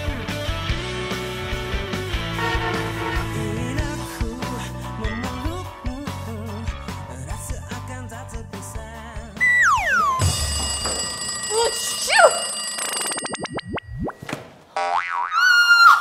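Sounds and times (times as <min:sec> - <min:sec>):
background music: 0:00.0 - 0:11.5
wobbling tone: 0:09.4 - 0:14.2
springy boing effects: 0:14.8 - 0:15.3.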